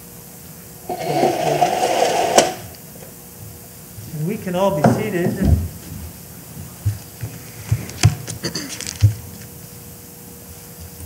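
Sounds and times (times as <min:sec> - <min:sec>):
curtain sliding along rail: 0:00.9 - 0:02.7
sharp click of curtain closing: 0:00.9 - 0:02.7.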